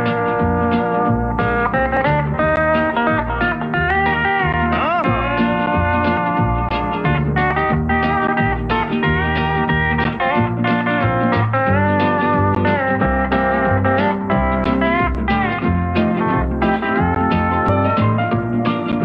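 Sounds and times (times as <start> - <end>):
bass accompaniment: 0.0 - 19.0
steel guitar solo: 0.0 - 19.0.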